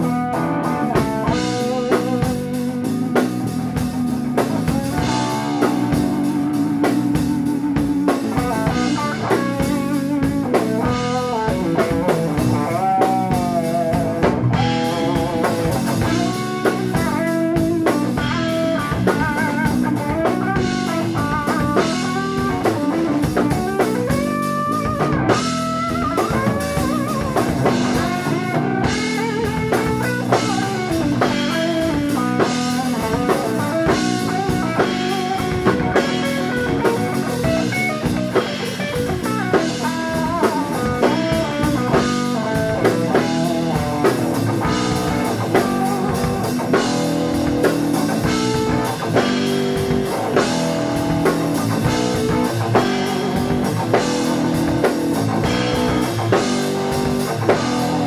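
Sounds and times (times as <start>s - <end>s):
drum kit busy beat: 0.0s - 58.0s
electric bass guitar: 0.0s - 58.0s
electric guitar with bent notes: 0.0s - 58.0s.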